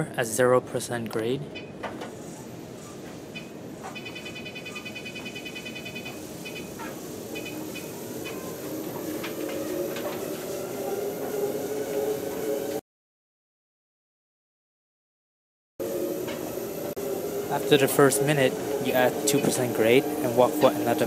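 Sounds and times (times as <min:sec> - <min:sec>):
treadmill motor and belt hum: 0:01.5 - 0:12.8, 0:15.8 - 0:21.0
treadmill console beeps: 0:03.3 - 0:06.7, 0:07.3 - 0:08.4.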